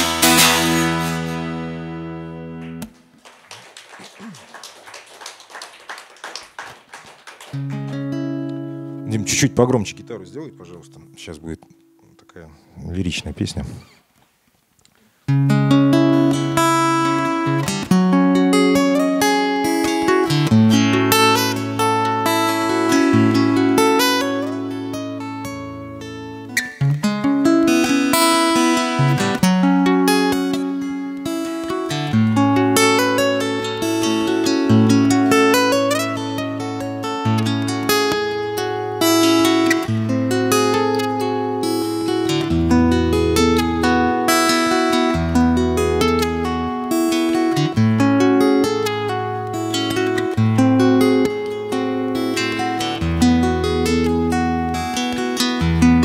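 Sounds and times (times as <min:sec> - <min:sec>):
strummed acoustic guitar: 0:00.0 - 0:03.0, 0:07.6 - 0:12.0, 0:15.3 - 0:56.0.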